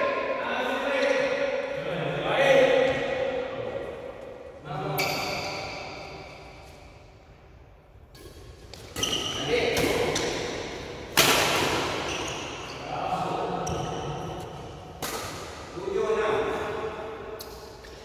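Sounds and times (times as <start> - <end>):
rackets striking shuttlecock: 8.1 - 12.1, 14.3 - 15.7.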